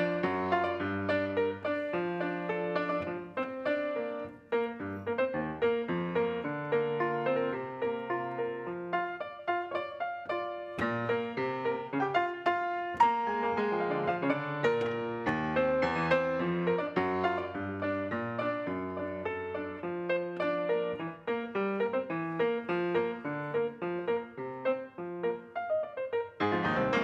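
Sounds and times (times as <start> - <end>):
solo piano playing: 0.0 - 27.0.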